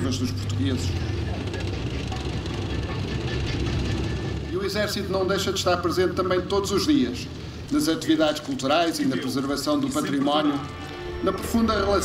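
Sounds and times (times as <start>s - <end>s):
tank engine and tracks rumbling: 0.0s - 12.0s.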